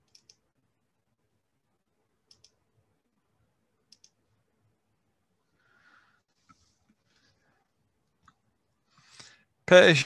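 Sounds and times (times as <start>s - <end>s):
computer mouse clicks: 0.0s - 0.4s, 2.2s - 2.6s, 3.9s - 4.2s.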